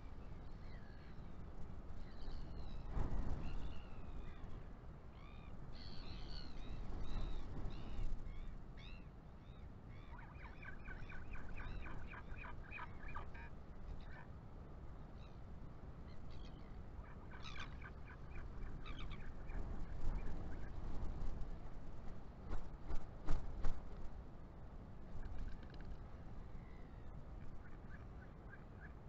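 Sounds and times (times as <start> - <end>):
wind rumble on microphone: 0.0 - 14.2, 15.9 - 29.0
birds calling: 10.0 - 14.3, 16.1 - 20.4.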